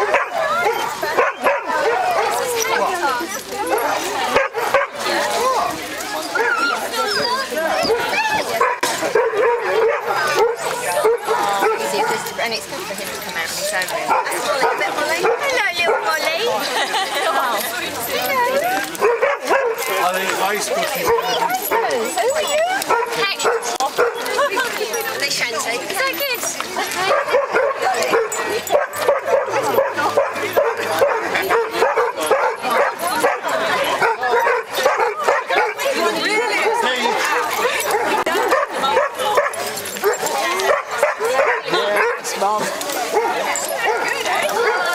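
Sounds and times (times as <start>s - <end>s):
dogs barking and yelping: 0.0s - 25.4s, 26.0s - 44.9s
people chatting: 0.0s - 44.9s.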